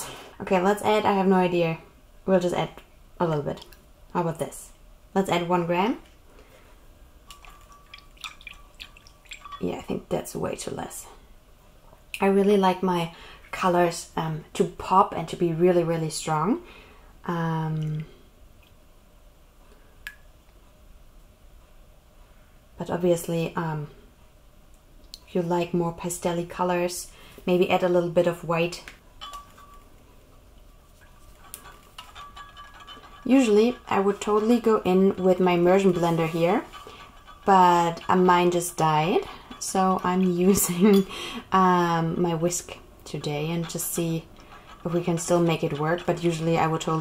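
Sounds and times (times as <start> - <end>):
liquid drips and ticks: 3.6 - 3.9, 7.3 - 10.0, 17.7 - 18.8
whisk tapping glass cup: 7.3 - 10.2, 29.2 - 30.0, 30.8 - 47.0.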